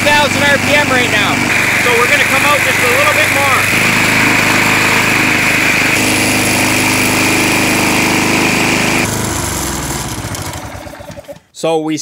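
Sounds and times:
engine running at high throttle: 0.0s - 11.4s.

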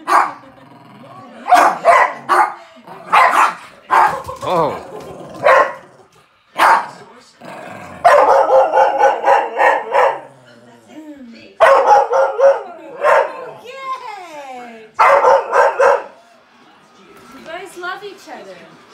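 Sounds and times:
dogs barking and yapping: 0.0s - 0.5s, 1.4s - 7.0s, 8.0s - 10.3s, 11.6s - 13.6s, 15.0s - 16.2s.

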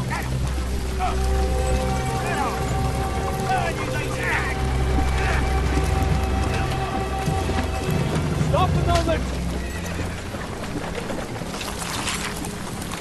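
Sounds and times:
film score music: 0.0s - 13.0s
horse whinnying: 9.5s - 10.6s.

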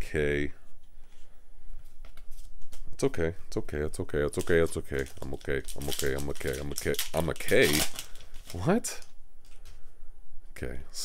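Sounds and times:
cards rustling in hand: 4.3s - 9.8s.

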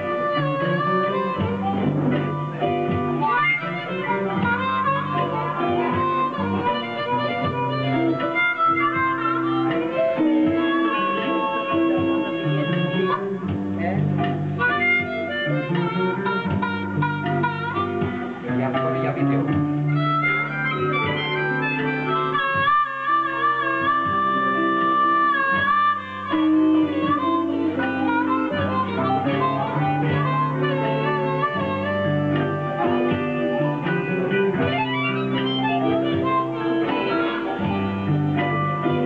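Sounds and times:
blues harmonica solo: 0.0s - 39.0s.

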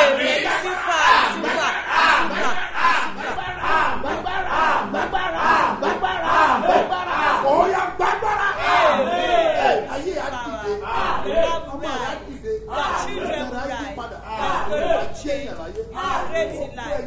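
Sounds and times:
man praying aloud: 0.0s - 17.0s.

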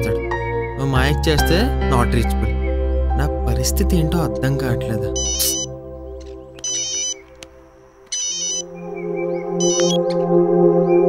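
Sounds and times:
soft background music: 0.0s - 11.0s
mobile phone ringing: 5.2s - 5.7s, 6.6s - 7.2s, 8.1s - 8.7s, 9.6s - 10.0s.

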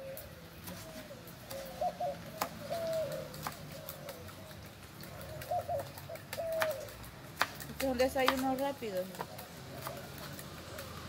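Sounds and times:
dove cooing: 0.0s - 7.2s, 8.7s - 11.0s.

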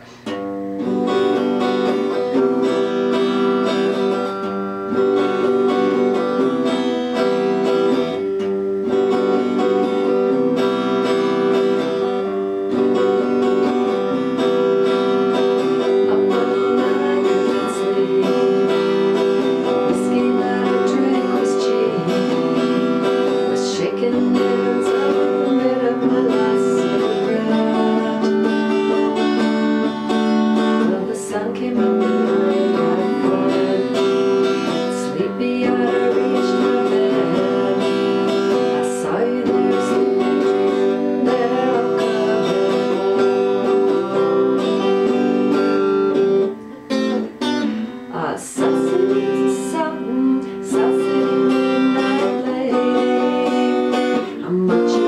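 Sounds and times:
electric guitar chords: 0.0s - 55.0s.

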